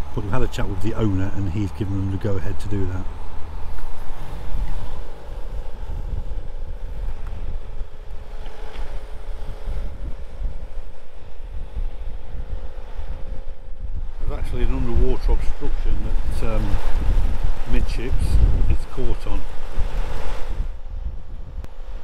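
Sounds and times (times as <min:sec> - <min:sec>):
faint mechanical hum: 0:00.0 - 0:22.0
wind buffeting microphone: 0:00.0 - 0:22.0.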